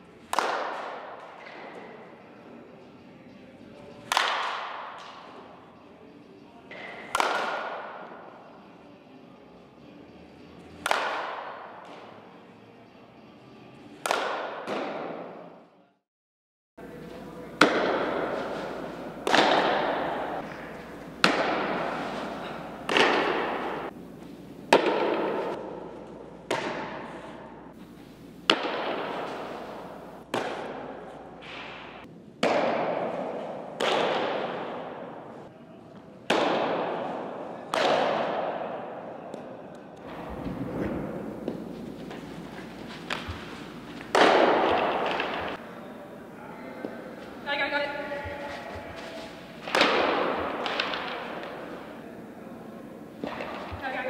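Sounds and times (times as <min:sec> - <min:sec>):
echo in large indoor hall: 0:00.0 - 0:16.0, 0:16.8 - 0:54.0
bat hitting softballs: 0:00.2 - 0:02.1, 0:04.0 - 0:05.5, 0:06.7 - 0:08.4, 0:10.7 - 0:12.2, 0:13.9 - 0:15.5, 0:16.8 - 0:35.3, 0:36.3 - 0:39.5, 0:40.1 - 0:47.5, 0:48.2 - 0:54.0.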